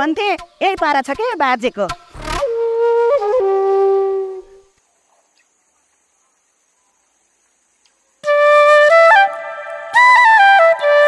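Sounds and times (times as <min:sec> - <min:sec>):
flute note: 0:02.2 - 0:04.7, 0:08.2 - 0:11.0.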